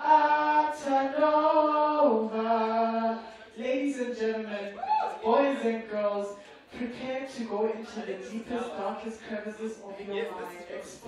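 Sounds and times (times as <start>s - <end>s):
woman singing into microphone: 0.0s - 9.8s.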